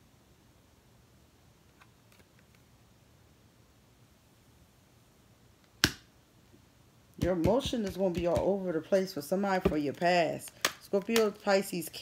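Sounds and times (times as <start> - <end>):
sharp loud snap: 5.8 - 6.1.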